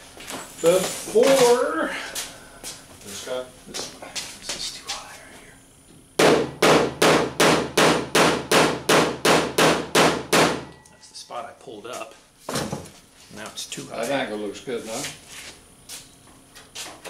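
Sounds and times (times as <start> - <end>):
hammer striking metal panel: 6.2 - 10.7
panel ringing low: 10.6 - 11.6.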